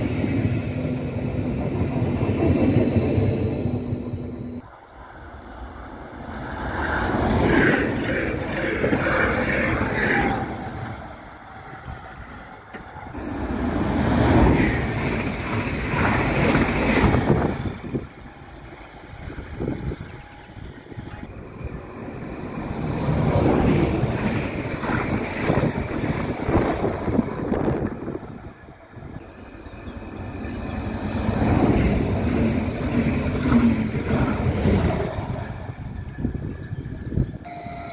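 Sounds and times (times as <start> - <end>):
electric train approaching: 0.0 - 37.9
wind buffeting microphone: 14.0 - 37.5.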